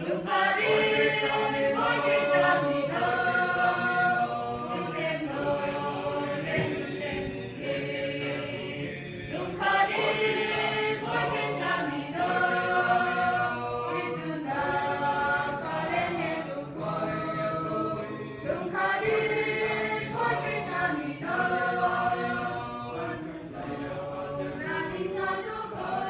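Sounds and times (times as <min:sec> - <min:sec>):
mixed choir singing a hymn: 0:00.0 - 0:26.0.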